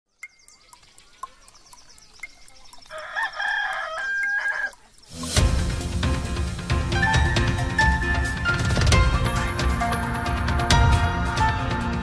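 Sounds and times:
clock ticking: 0.1 - 5.6
rooster crowing: 2.9 - 4.8.

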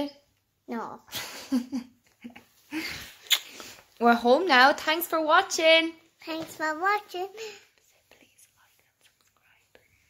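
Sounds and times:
faint whisper: 7.5 - 10.0.

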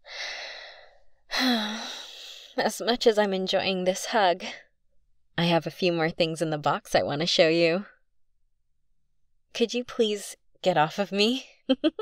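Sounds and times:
woman breathing in deeply: 0.0 - 2.5.

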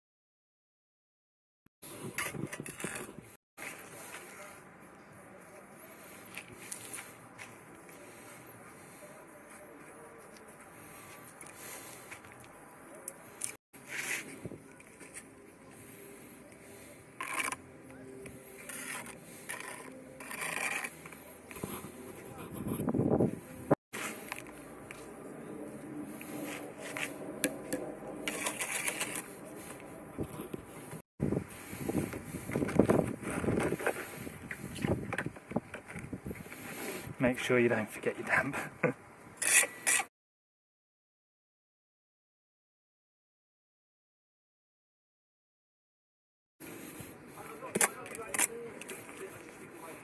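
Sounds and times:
trowel scraping and slapping mortar: 1.8 - 4.2, 13.4 - 23.3, 26.1 - 31.0, 39.4 - 40.1.

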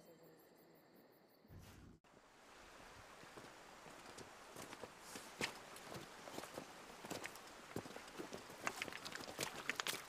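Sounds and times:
footsteps on river stones and gravel: 3.0 - 10.0.

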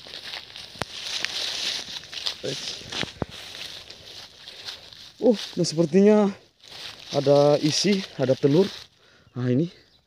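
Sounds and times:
footsteps in dry grass and leaves: 0.0 - 9.8.

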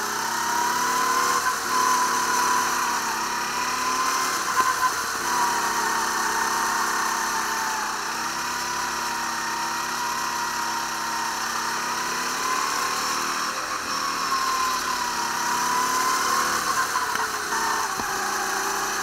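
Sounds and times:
go-kart engine running: 0.0 - 19.0.

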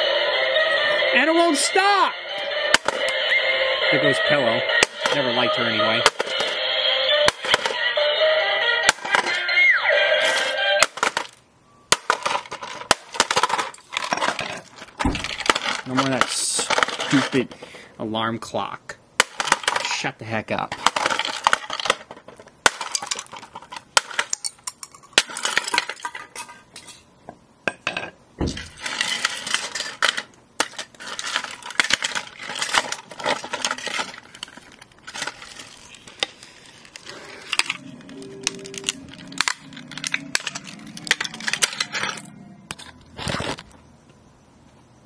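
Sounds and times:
plastic pieces clattering: 2.7 - 3.2, 4.8 - 6.6, 7.2 - 7.8, 8.8 - 9.4, 10.2 - 17.8, 19.2 - 27.0, 28.4 - 43.8
plastic toy being smashed: 2.7 - 3.2, 4.8 - 6.6, 7.2 - 7.9, 8.8 - 9.5, 10.2 - 17.6, 19.2 - 26.4, 28.4 - 43.7.

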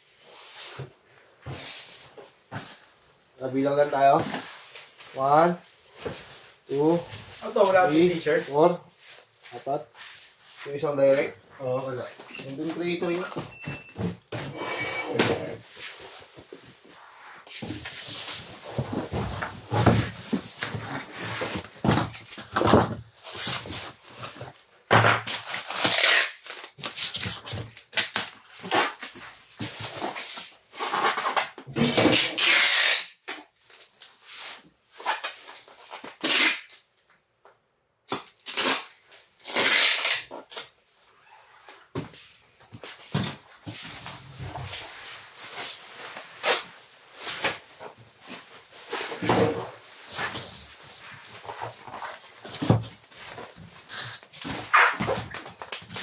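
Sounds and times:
packing tape ripping: 25.3 - 29.0, 30.8 - 33.4, 36.1 - 36.8, 38.1 - 40.7
bubble wrap rustling: 25.4 - 29.1.

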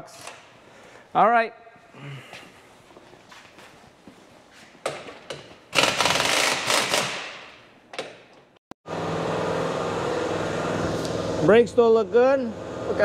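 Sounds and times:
steady mechanical hum: 0.0 - 13.0
impact wrench rattling: 5.0 - 7.5.

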